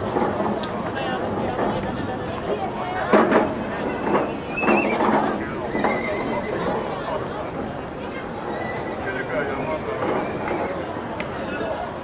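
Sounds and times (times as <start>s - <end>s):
people chattering: 0.0s - 12.0s
horse whinnying: 5.7s - 6.6s.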